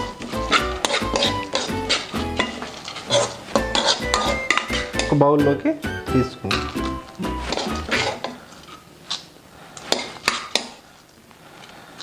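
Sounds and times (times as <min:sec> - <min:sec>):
spoon scraping and clinking: 0:00.0 - 0:05.2, 0:06.4 - 0:09.2.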